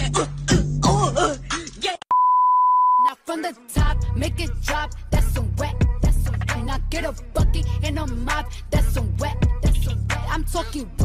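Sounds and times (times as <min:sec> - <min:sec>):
music with vocals: 0:00.0 - 0:02.0, 0:03.0 - 0:11.0
censor bleep: 0:02.1 - 0:03.1.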